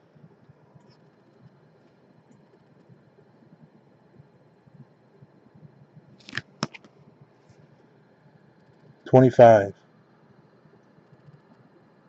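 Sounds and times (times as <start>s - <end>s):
plastic card holder swish: 6.2s - 6.9s.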